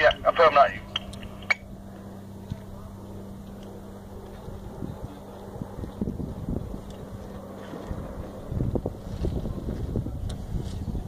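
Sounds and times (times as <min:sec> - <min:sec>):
faint steady hum: 0:00.0 - 0:11.0
wind rumble on microphone: 0:00.9 - 0:11.0.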